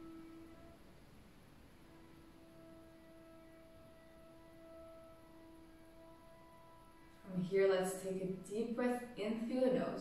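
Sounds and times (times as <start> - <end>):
faint sustained ringing tone: 0.0 - 9.2.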